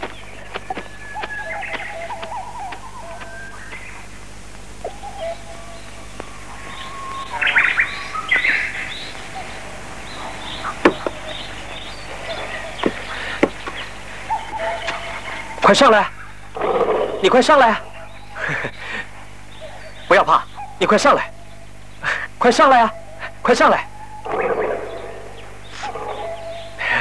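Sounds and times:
birds chirping and calling: 0:00.0 - 0:27.0.

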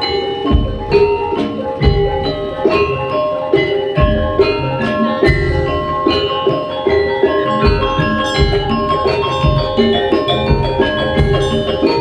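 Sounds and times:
gamelan metallophones ringing: 0:00.0 - 0:12.0.

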